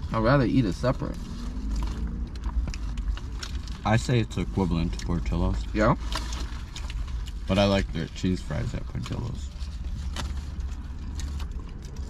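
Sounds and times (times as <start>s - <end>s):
low car cabin rumble: 0.0s - 12.0s.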